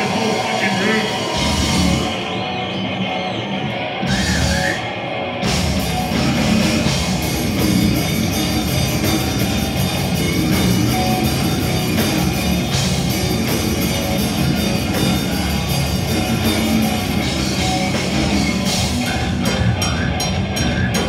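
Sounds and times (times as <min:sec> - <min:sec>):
drums with cymbals: 0:00.0 - 0:02.2, 0:05.4 - 0:21.0
bass guitar: 0:00.0 - 0:21.0
down-tuned electric guitars: 0:00.0 - 0:21.0.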